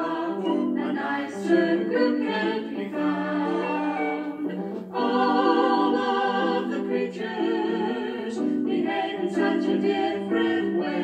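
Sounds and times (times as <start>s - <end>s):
children's song sung to music: 0.0s - 11.0s.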